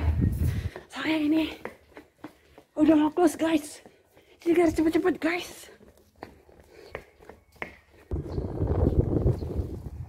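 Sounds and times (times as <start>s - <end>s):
wind buffeting microphone: 0.0s - 0.8s, 8.1s - 10.0s.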